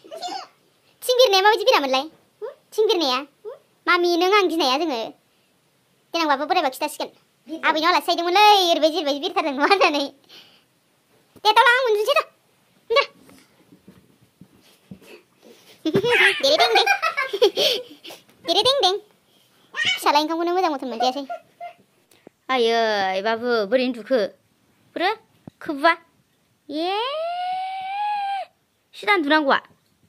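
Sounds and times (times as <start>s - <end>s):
high-pitched voiced cry: 0.0s - 0.6s, 15.9s - 16.8s, 19.7s - 20.2s, 20.9s - 21.8s, 26.7s - 28.6s.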